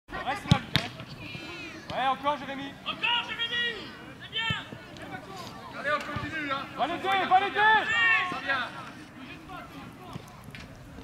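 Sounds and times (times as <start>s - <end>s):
voices calling: 0.1s - 10.5s
football kick thuds: 0.4s - 1.1s.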